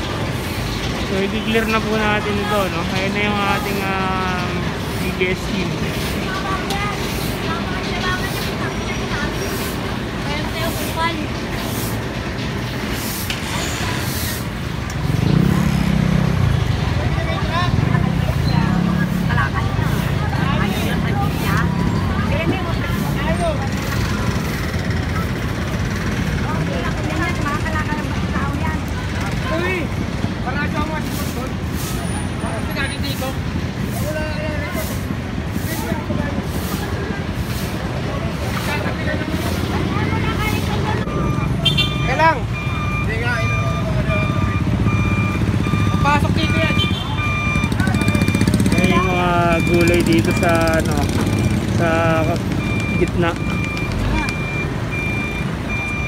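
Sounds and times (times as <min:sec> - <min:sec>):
street traffic: 0:00.0 - 0:56.0
truck engines rumbling: 0:00.0 - 0:56.0
voices: 0:00.0 - 0:56.0
reversing beeper: 0:40.4 - 0:56.0.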